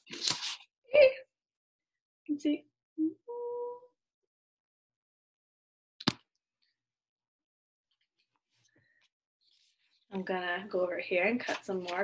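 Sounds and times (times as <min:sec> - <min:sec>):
woman saying ooh: 0:03.0 - 0:03.9.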